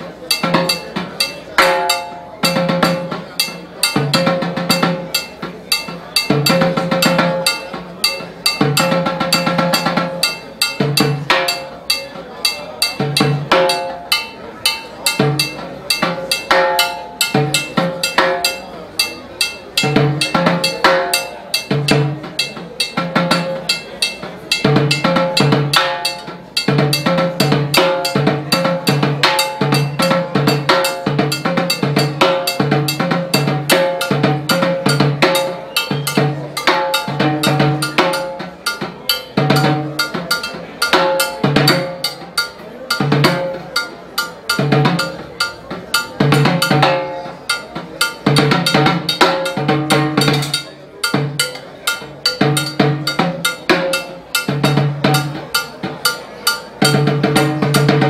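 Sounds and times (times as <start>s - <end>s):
timbales played with sticks: 0.0s - 58.0s.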